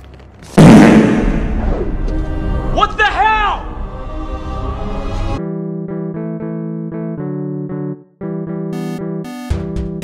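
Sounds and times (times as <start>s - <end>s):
loud crashing impact: 0.6s - 2.0s.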